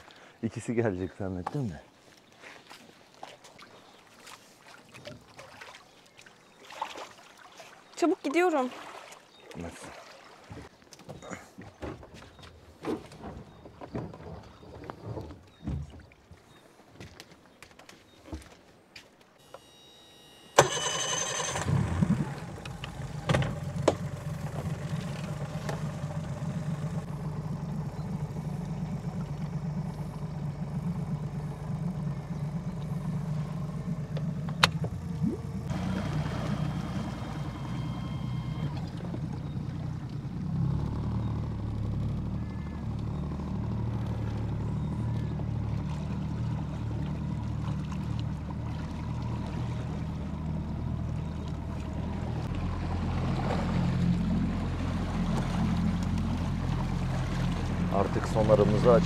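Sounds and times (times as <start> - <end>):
outboard motor running: 19.4 - 59.0.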